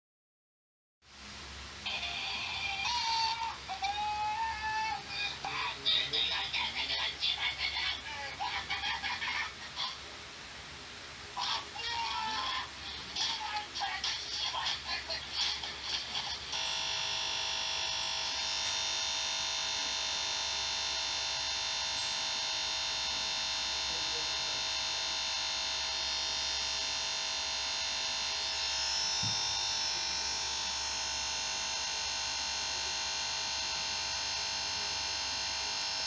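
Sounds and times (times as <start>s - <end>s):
steady electronic buzz from speakers: 1.1s - 36.0s.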